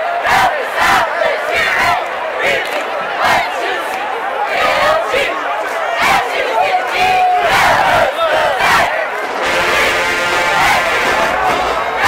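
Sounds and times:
cheerleaders shouting a cheer: 0.0 - 12.0
stadium crowd: 0.0 - 12.0.

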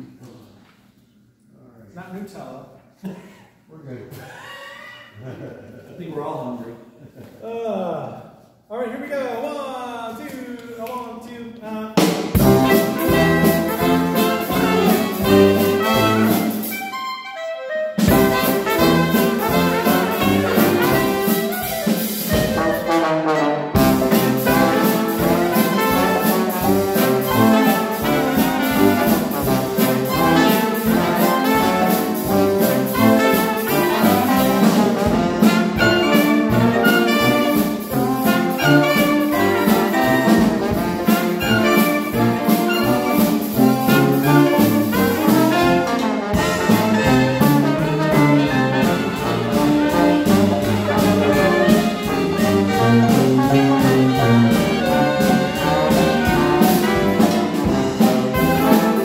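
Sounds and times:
dixieland jazz band playing: 12.0 - 59.0.

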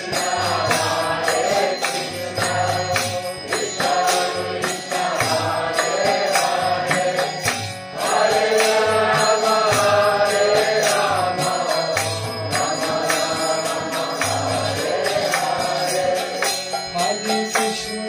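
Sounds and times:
voices chanting in unison: 0.0 - 17.3
hand cymbal strikes: 0.0 - 18.0.

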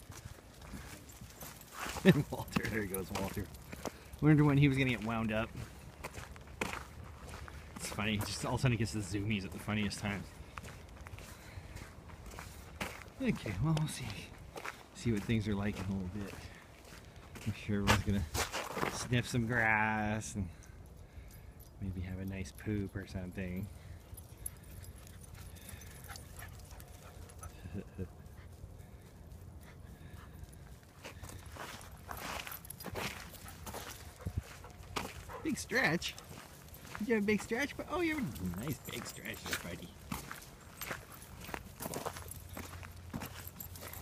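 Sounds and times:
footsteps on gravel: 0.0 - 19.2, 30.3 - 44.0.

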